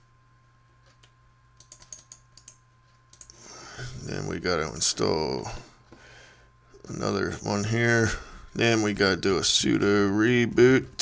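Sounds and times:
steady low hum: 0.0s - 11.0s
keyboard typing: 0.8s - 3.4s.

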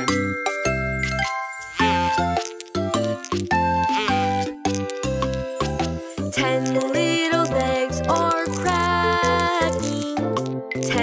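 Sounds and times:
upbeat children's song music: 0.0s - 11.0s.

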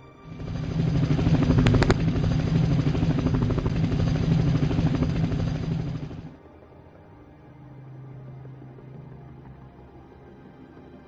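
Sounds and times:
helicopter rotor chop: 0.2s - 6.4s.

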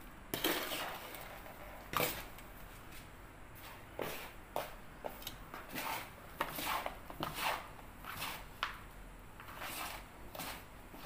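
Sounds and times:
hands stirring dry soil: 3.6s - 8.8s, 9.4s - 11.0s.

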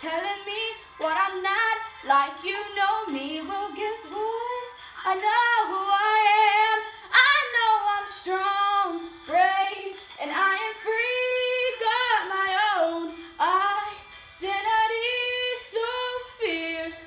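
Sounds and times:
girl singing pop song: 0.0s - 17.0s
breaths: 4.7s - 5.0s, 6.8s - 7.2s.

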